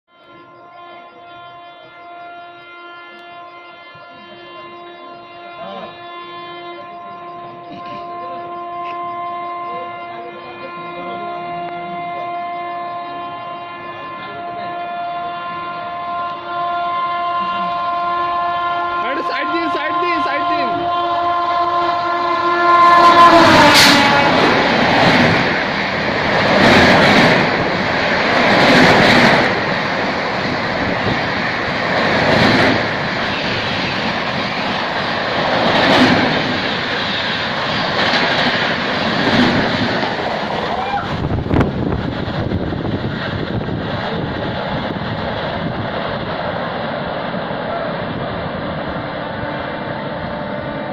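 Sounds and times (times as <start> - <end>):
locomotive horn blast: 0.1 - 25.8, 26.6 - 44.9, 48.9 - 50.9
train coaches rushing and clattering: 0.1 - 50.9.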